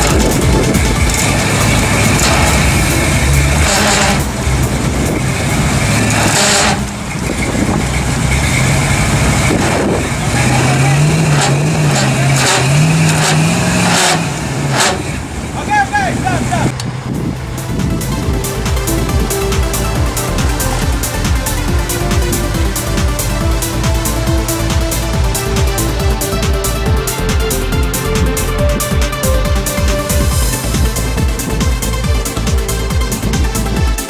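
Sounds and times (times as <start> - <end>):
background voices: 0.0 - 16.8
pickup truck engine running: 0.0 - 34.0.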